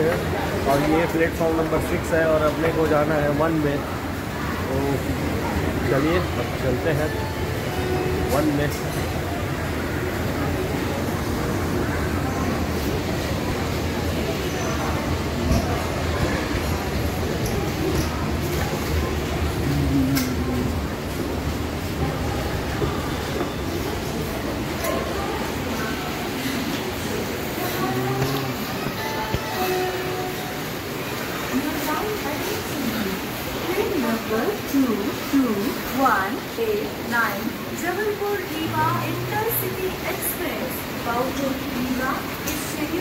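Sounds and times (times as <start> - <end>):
railway station din: 0.0 - 43.0
train noise: 0.0 - 43.0
indistinct voices: 4.1 - 43.0.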